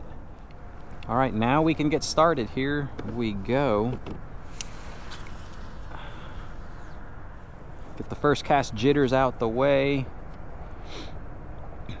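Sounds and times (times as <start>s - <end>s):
fishing line whirring out: 4.5s - 7.0s.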